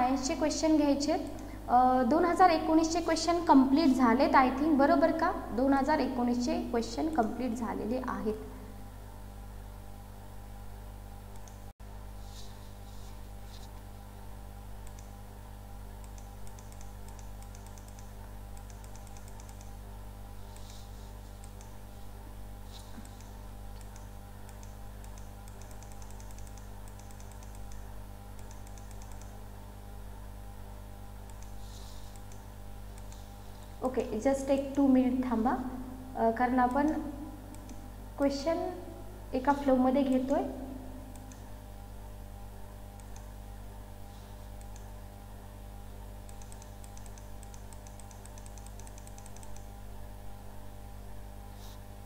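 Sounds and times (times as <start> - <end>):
low electrical hum: 0.0 - 52.0
computer keys clicking: 11.4 - 11.6, 14.8 - 15.2, 16.0 - 19.8, 21.4 - 21.8, 23.0 - 29.4, 31.2 - 33.3, 36.8 - 37.8, 41.1 - 41.4, 43.0 - 43.3, 44.6 - 44.9, 46.3 - 49.7.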